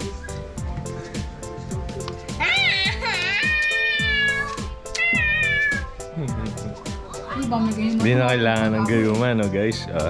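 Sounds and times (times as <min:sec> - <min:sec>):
background music with drum beat: 0:00.0 - 0:10.0
cat meowing: 0:02.4 - 0:06.0.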